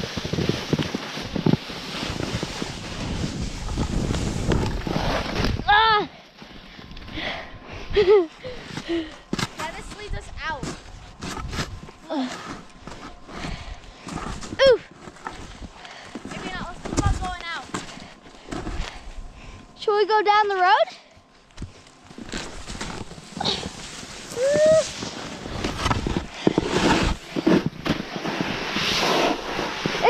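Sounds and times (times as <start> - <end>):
snowboard scraping over snow: 0.0 - 5.7, 8.0 - 14.6, 15.2 - 17.9, 22.2 - 30.0.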